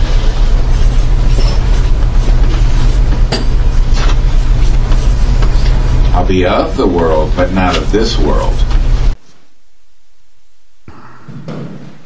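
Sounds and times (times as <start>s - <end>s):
steady low hum with hiss: 0.0s - 12.0s.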